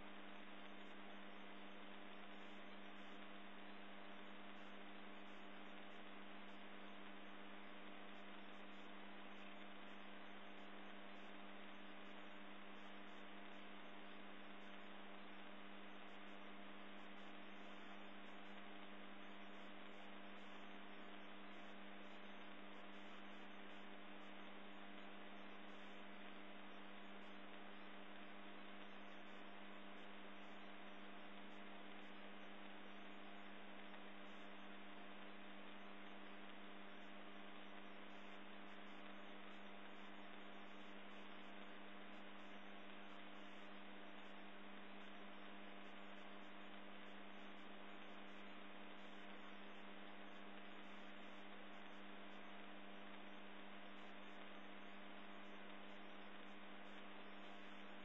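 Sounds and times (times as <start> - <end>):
steady electrical hum: 0.0 - 58.0.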